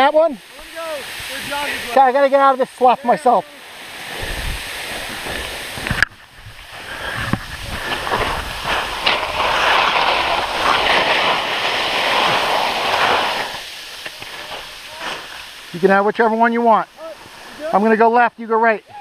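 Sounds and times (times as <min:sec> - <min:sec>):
skis scraping through slushy snow: 0:00.0 - 0:18.1.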